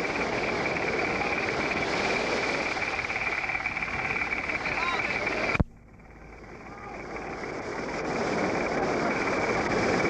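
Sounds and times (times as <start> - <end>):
surf: 0.0 - 10.0
wind noise: 0.0 - 10.0
faint voices: 6.4 - 7.6.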